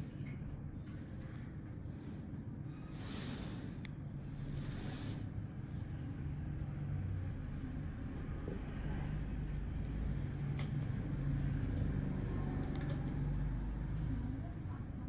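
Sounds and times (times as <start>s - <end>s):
low hum and rumble: 0.0s - 15.0s.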